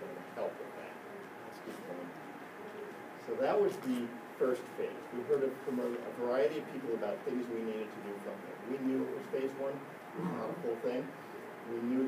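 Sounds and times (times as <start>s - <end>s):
faint murmur of a voice: 0.0s - 12.0s.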